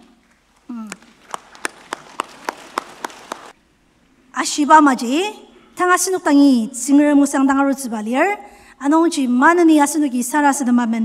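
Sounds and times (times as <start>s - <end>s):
rhythmic hand clapping: 0.9s - 3.6s.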